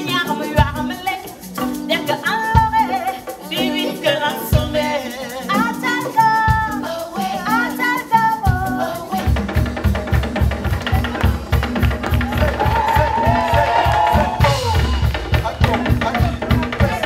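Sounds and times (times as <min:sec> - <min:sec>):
drum kit fast beat: 0:00.0 - 0:01.8, 0:02.5 - 0:05.7, 0:08.4 - 0:17.0
woman singing: 0:00.0 - 0:12.4
live band music: 0:00.0 - 0:17.0.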